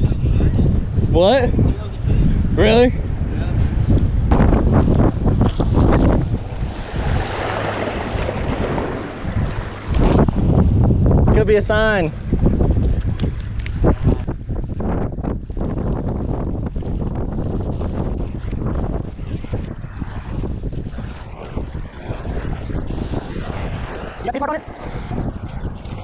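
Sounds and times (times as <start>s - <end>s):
wind buffeting microphone: 0.0s - 26.0s
waves splashing against rocks: 4.3s - 10.4s.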